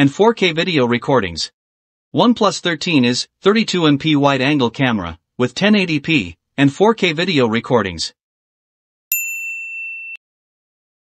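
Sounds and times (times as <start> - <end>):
bell-like ding: 9.1 - 10.2.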